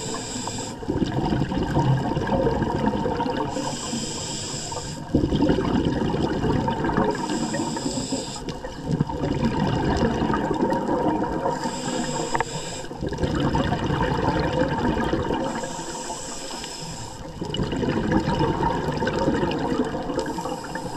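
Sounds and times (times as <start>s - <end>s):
hissing regulator inhales: 0.0s - 0.8s, 3.5s - 5.1s, 7.1s - 8.6s, 11.4s - 13.0s, 15.4s - 17.3s, 20.2s - 20.9s
rumbling exhaled bubbles: 0.8s - 3.8s, 5.0s - 7.7s, 8.5s - 15.9s, 17.2s - 20.9s.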